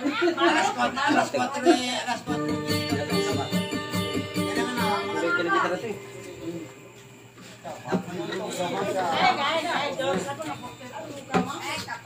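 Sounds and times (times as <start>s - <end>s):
people talking and chattering: 0.0s - 12.0s.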